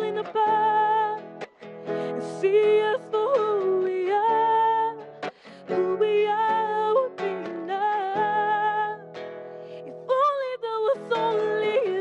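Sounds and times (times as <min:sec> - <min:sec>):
instrumental accompaniment: 0:00.0 - 0:12.0
woman singing into a microphone: 0:00.0 - 0:12.0.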